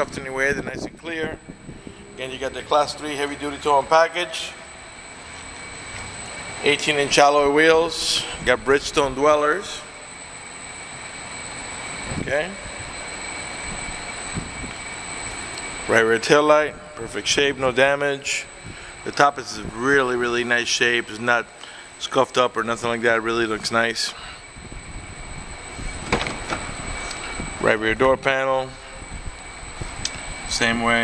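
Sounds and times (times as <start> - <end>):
high-pitched whine: 0.0 - 31.0
low rumbling handling noise: 24.7 - 27.6.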